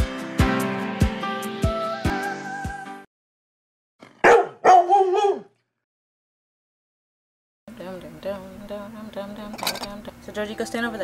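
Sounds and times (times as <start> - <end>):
dog barking: 4.2 - 5.6.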